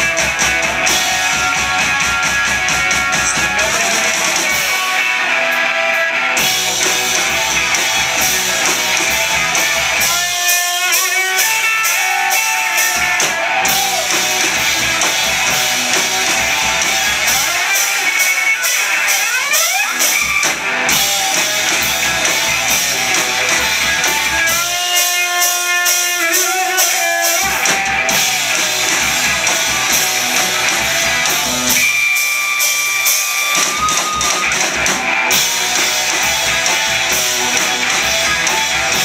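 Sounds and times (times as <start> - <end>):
live rock band playing: 0.0 - 39.0.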